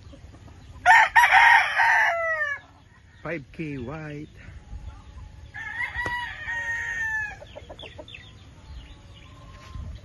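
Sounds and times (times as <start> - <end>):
rooster crowing: 0.8 - 2.6, 5.5 - 7.4
rooster clucking: 5.6 - 8.4.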